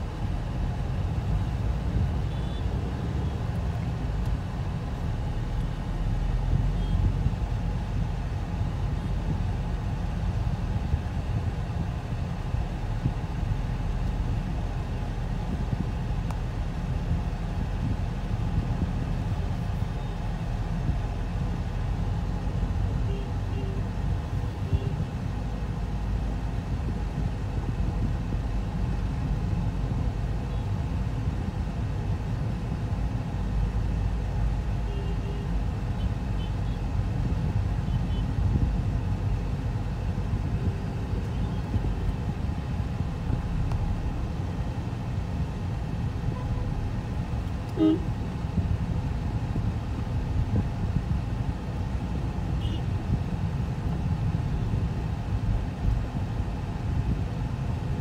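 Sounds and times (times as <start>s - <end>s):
car interior rumble: 0.0s - 58.0s
car horn toots: 47.7s - 48.1s.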